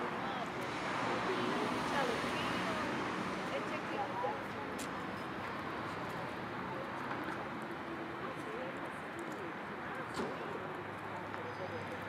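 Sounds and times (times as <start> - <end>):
distant indistinct voices: 0.0 - 12.0
steady traffic noise: 0.0 - 12.0.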